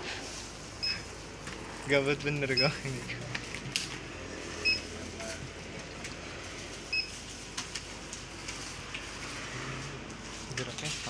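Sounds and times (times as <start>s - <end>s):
barcode scanner beeping: 0.8s - 1.1s, 2.5s - 2.8s, 4.6s - 5.0s, 6.9s - 7.2s.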